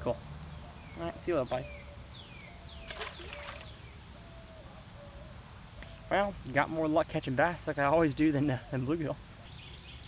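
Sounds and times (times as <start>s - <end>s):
low steady bird notes: 0.0s - 10.0s
birds whistling: 0.5s - 6.2s, 9.4s - 10.0s.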